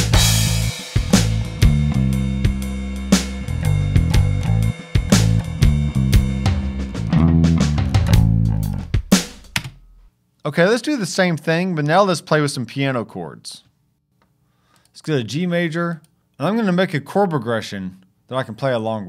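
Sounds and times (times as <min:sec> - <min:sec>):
cymbal crash: 0:00.0 - 0:09.6
live instrument playing: 0:00.0 - 0:09.6
shuffle drum groove: 0:00.0 - 0:10.1.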